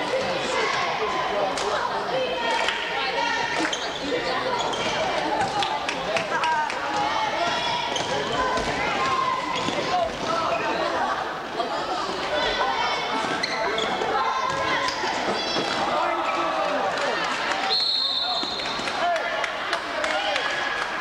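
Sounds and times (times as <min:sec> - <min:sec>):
indistinct shouting and chatter: 0:00.0 - 0:21.0.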